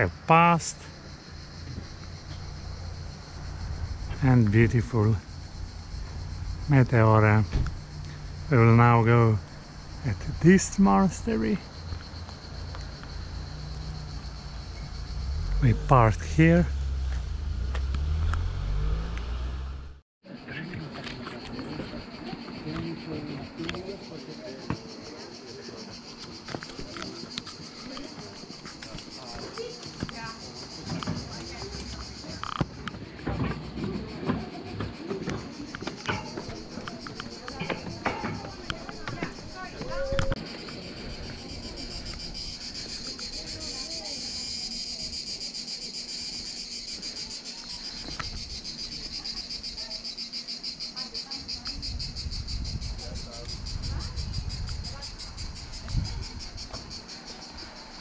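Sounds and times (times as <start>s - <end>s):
cicadas buzzing: 0.0s - 58.0s
distant voices: 0.0s - 58.0s.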